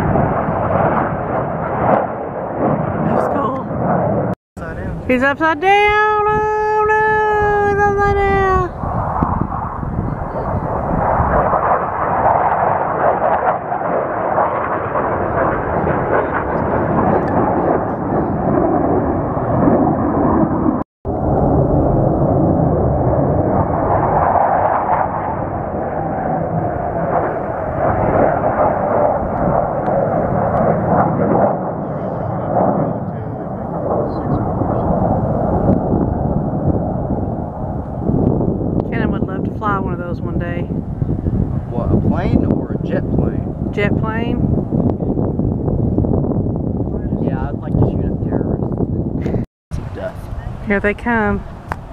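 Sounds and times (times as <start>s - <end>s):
jet aircraft roar: 0.0s - 51.9s.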